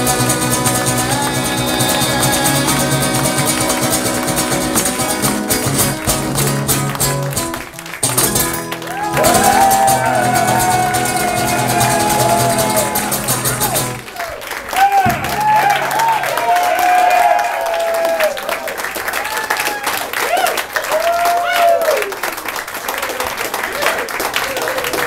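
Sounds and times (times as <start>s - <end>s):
acoustic guitar strummed hard: 0.0s - 14.1s, 14.9s - 17.9s.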